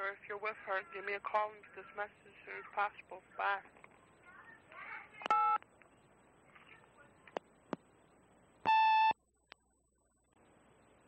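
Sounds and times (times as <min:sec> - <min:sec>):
faint tape hiss: 0:00.0 - 0:11.0
electronic beep: 0:08.7 - 0:09.2.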